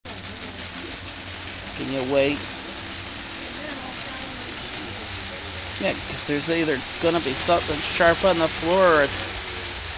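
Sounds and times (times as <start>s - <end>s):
model train electric whir: 0.0s - 9.9s
person speaking: 3.4s - 9.2s.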